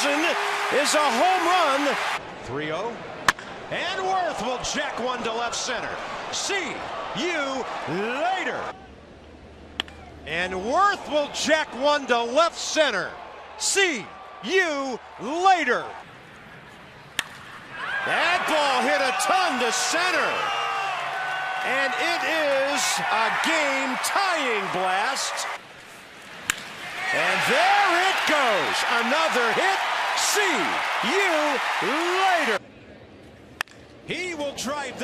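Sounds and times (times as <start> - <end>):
stadium crowd cheering: 0.0 - 2.2, 2.9 - 8.9, 10.0 - 16.0, 17.6 - 25.6, 26.6 - 32.6
ballpark ambience: 0.0 - 35.0
wooden bat hitting ball: 17.2 - 17.5
bat cracking against ball: 17.2 - 17.6, 26.4 - 26.8
commentator calling play: 18.0 - 20.5, 21.6 - 25.6, 27.1 - 32.6.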